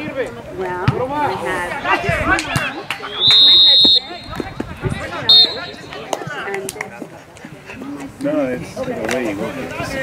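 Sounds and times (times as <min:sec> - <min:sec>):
voices and shouts: 0:00.0 - 0:08.1
referee's whistle blast: 0:02.6 - 0:04.4, 0:05.2 - 0:05.8.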